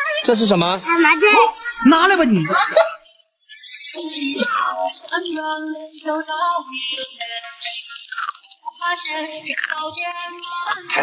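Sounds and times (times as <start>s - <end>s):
music with sung melody: 0.0s - 11.0s.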